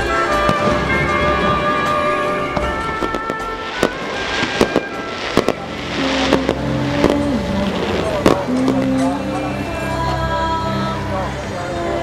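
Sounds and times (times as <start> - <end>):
fireworks bangs: 0.0 - 9.4
music playing: 0.0 - 12.0.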